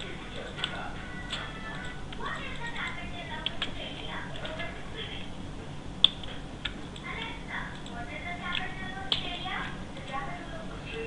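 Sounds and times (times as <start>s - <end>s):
computer mouse clicks: 7.7s - 9.3s.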